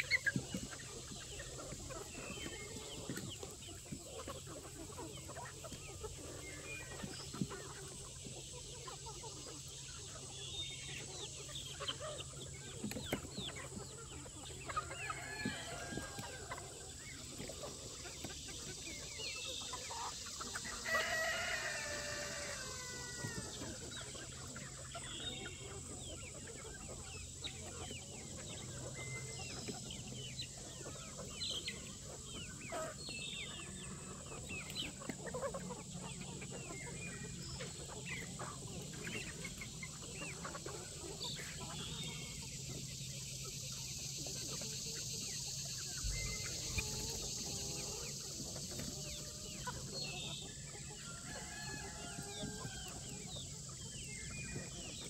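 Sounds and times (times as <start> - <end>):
chickens clucking: 0.0 - 55.0
rooster crowing: 20.9 - 23.5.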